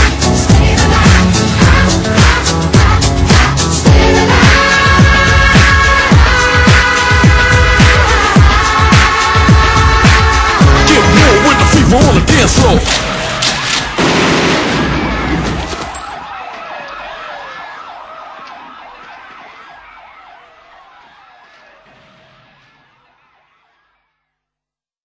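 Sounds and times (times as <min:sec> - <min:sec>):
theme music: 0:00.0 - 0:23.6
wailing siren effect: 0:04.0 - 0:10.4, 0:14.8 - 0:24.2.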